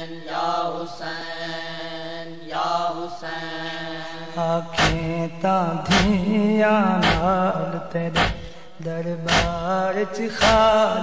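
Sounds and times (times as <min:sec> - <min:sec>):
heavy chest beats: 0:04.8 - 0:05.1, 0:05.9 - 0:06.2, 0:07.0 - 0:07.4, 0:08.1 - 0:08.7, 0:09.3 - 0:09.7, 0:10.4 - 0:10.7.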